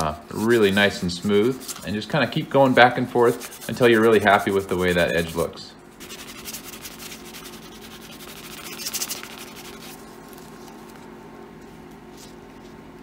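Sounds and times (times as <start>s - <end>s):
low steady hum: 0.0s - 13.0s
cloth rubbing leather: 2.7s - 11.2s.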